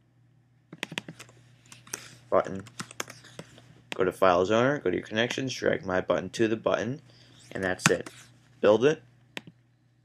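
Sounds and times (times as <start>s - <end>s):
keyboard and mouse clicking: 0.7s - 3.5s, 9.4s - 9.6s.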